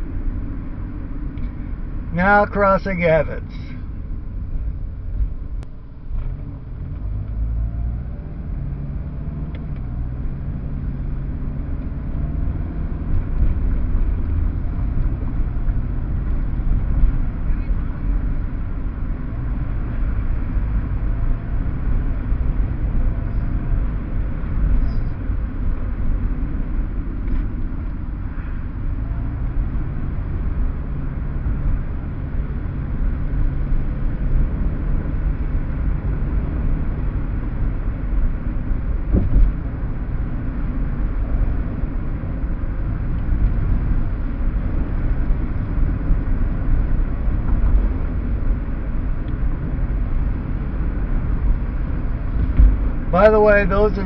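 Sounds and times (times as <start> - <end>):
car engine rumble: 0.0 - 54.0
tyres on road: 0.0 - 54.0.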